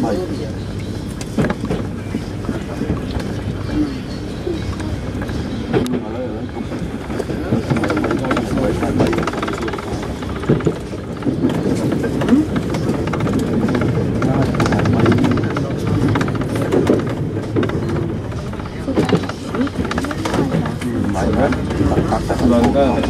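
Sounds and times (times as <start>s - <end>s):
low unclear voices talking: 0.0s - 23.0s
train running over steel viaduct: 0.0s - 23.0s.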